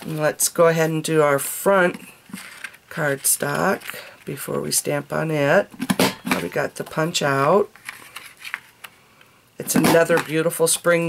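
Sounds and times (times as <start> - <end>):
paper handling: 7.8 - 9.0.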